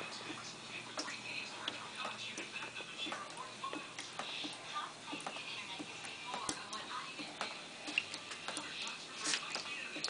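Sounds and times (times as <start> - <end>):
water dripping into plastic tub: 0.0 - 10.0.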